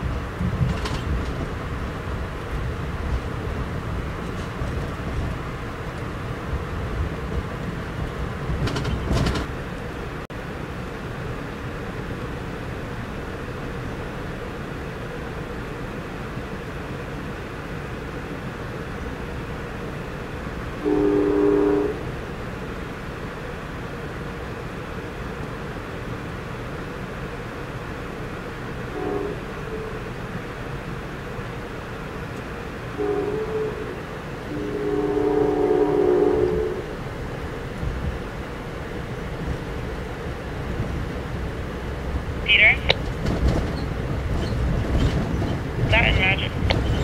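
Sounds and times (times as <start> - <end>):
train coach rumbling on rails: 0.0 - 47.0
locomotive horn blast: 20.8 - 22.2, 28.9 - 30.0, 33.0 - 37.0.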